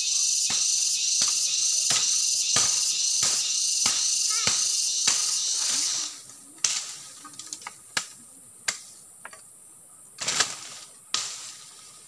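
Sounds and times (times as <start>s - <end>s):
high insect buzzing: 0.0s - 6.2s.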